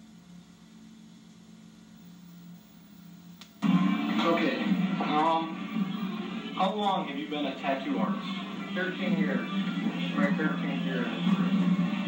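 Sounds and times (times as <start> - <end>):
faint low hum: 0.0 - 12.0
click: 3.4 - 3.6.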